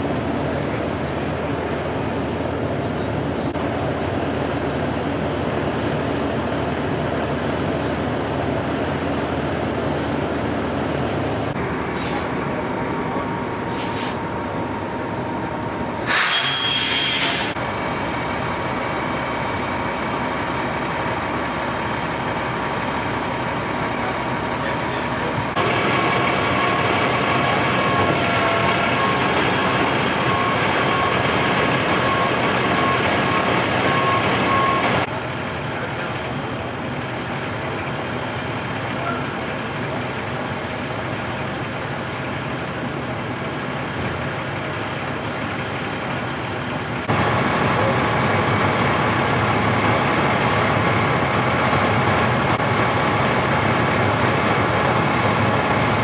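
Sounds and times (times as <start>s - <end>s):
fire truck engines idling: 0.0s - 56.0s
steady high tone: 11.5s - 17.2s.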